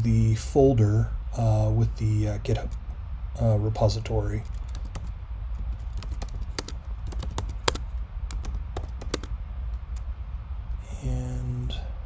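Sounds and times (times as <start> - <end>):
low steady hum: 0.0 - 12.0
typing on computer keyboard: 4.4 - 10.0.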